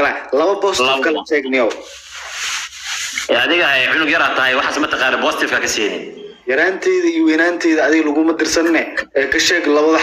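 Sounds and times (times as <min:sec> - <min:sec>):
man speaking: 0:00.0 - 0:01.9
rustling rubbing noise: 0:01.7 - 0:03.4.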